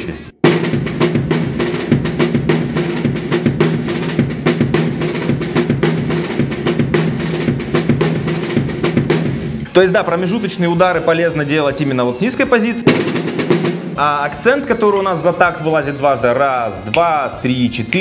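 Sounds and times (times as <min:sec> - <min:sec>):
drum kit groove: 0:00.0 - 0:18.0.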